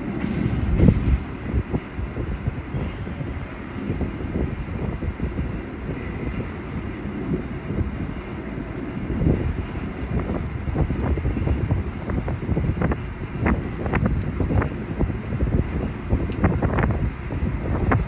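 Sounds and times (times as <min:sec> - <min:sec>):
strong wind gusts on microphone: 0:00.0 - 0:18.0.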